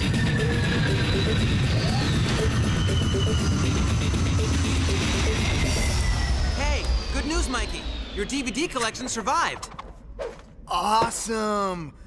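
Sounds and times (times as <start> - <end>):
cartoon soundtrack music: 0.0 - 6.4.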